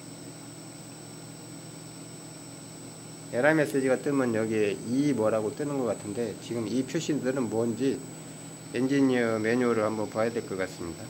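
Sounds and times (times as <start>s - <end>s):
heat pump low hum: 0.0s - 11.0s
thin high whine: 0.0s - 11.0s.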